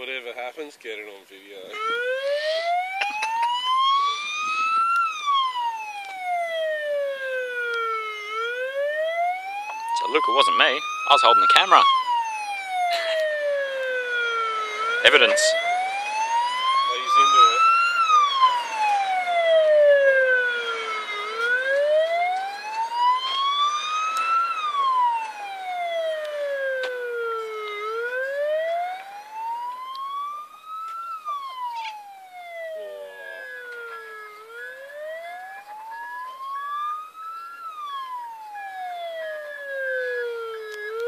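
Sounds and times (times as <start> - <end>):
ambulance siren wailing: 1.4 - 41.0.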